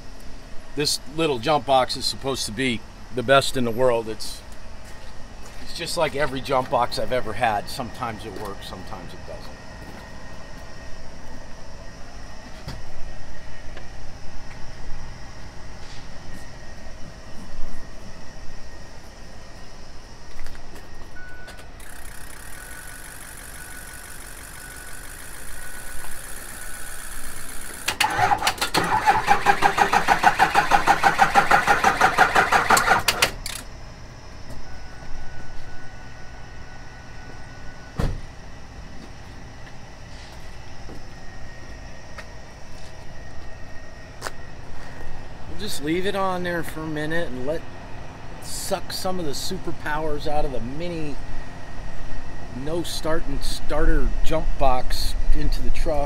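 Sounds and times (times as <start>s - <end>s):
steady high whine: 0.0s - 56.0s
diesel engine cranking on starter: 27.2s - 33.6s.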